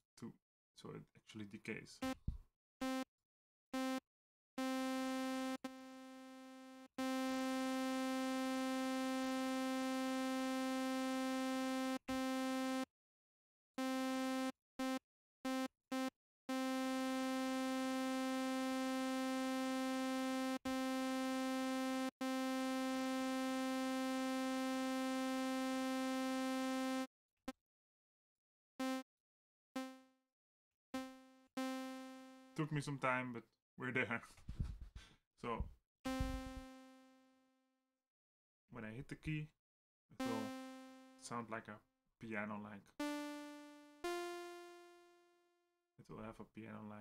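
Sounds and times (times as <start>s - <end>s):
buzzy synthesizer note: 36.1s - 36.8s, 40.2s - 41.4s.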